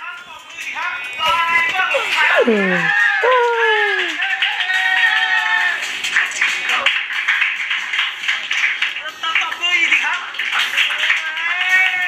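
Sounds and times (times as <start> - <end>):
hands clapping: 1.2 - 12.0.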